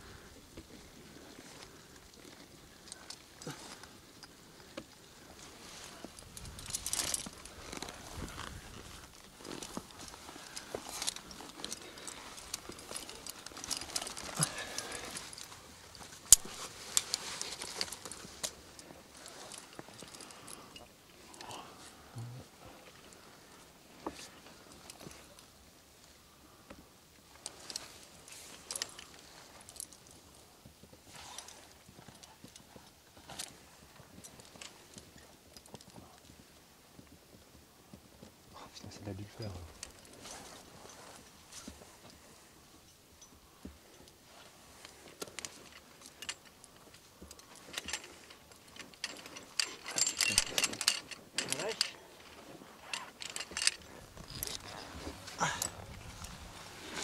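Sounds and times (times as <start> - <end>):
climbing gear clinking: 0.2 - 57.0.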